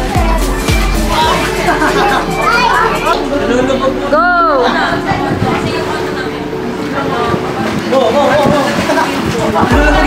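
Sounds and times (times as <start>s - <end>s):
children calling out and chattering: 0.0s - 6.7s
music playing: 0.0s - 10.0s.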